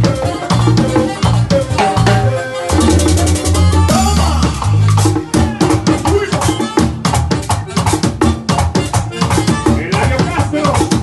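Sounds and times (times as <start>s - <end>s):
latin dance band percussion: 0.0s - 11.0s.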